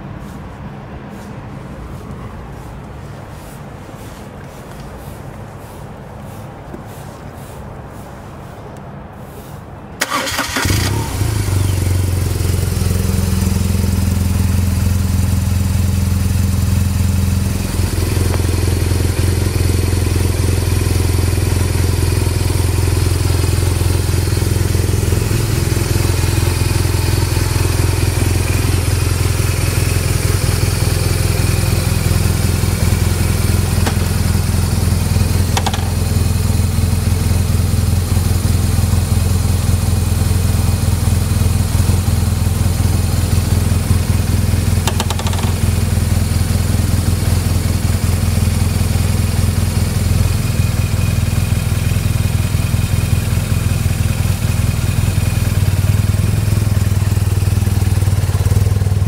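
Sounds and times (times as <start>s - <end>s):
motorcycle engine starting and idling: 10.0s - 59.0s.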